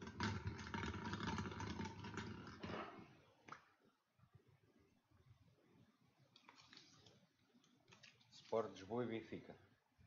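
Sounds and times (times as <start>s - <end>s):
plastic balls rattling in glass bowl: 0.0s - 2.8s.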